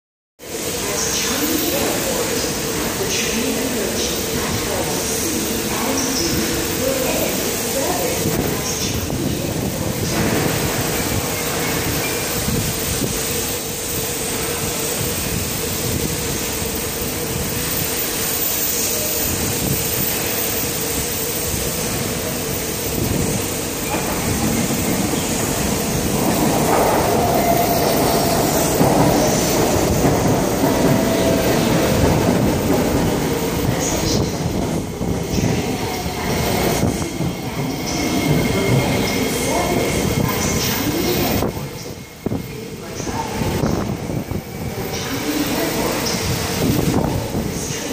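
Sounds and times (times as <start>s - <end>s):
metro train running noise: 0.4s - 47.9s
train wheel squeal: 36.2s - 42.4s.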